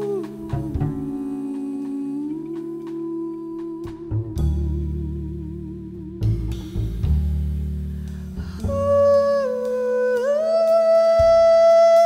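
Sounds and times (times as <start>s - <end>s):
woman singing wordless ooh: 0.0s - 6.9s, 8.5s - 12.0s
big band low chords: 0.0s - 10.6s.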